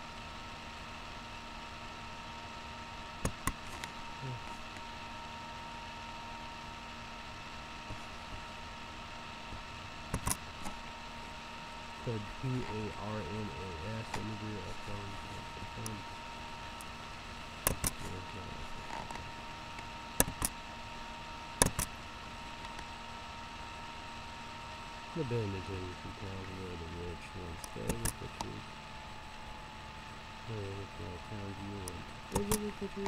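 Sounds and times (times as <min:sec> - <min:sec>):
faint electrical whine: 0:00.0 - 0:33.0.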